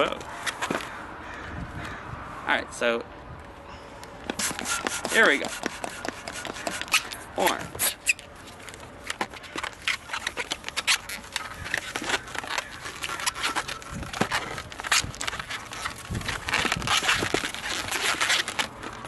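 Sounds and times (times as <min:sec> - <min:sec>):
balloon rubbing and squeaking: 0:04.2 - 0:19.0.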